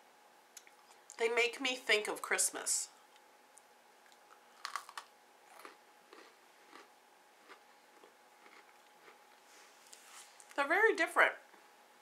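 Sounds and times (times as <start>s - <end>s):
chewing crunches: 4.0s - 10.0s
cookie crunching: 4.0s - 10.0s.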